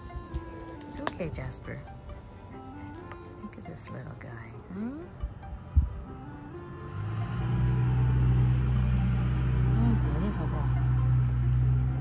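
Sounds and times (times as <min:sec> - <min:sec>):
engine running low hum: 0:00.0 - 0:12.0.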